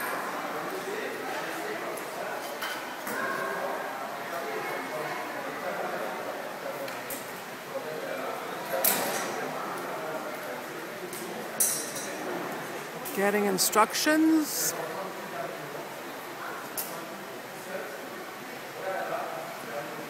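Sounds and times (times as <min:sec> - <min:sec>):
voices echoing in a hall: 0:12.5 - 0:15.0.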